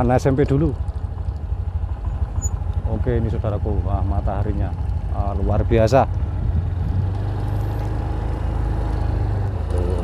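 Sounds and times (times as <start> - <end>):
motorcycle engine rumble: 0.0 - 10.0
wind buffeting microphone: 5.6 - 7.3.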